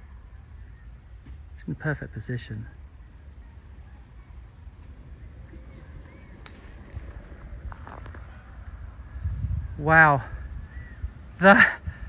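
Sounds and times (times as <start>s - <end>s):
low steady rumble: 0.0s - 12.0s
golf club striking ball: 6.4s - 7.3s.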